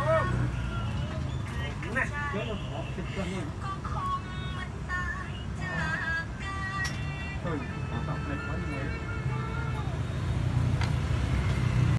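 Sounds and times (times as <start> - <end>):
low road traffic rumble: 0.0 - 11.9.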